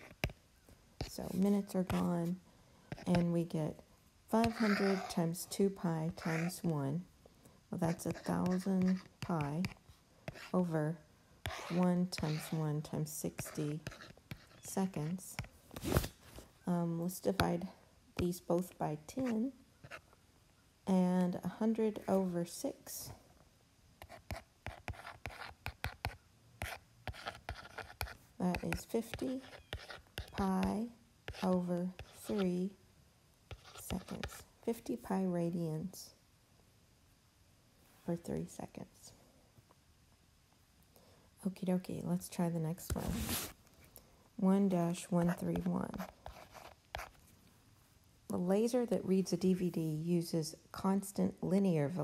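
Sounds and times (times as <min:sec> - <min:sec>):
stylus scratching on screen: 0:01.0 - 0:03.6, 0:04.3 - 0:06.7, 0:07.8 - 0:10.8, 0:11.4 - 0:16.2, 0:17.2 - 0:20.1, 0:24.0 - 0:32.7, 0:33.5 - 0:34.5, 0:42.8 - 0:43.6, 0:44.6 - 0:47.3.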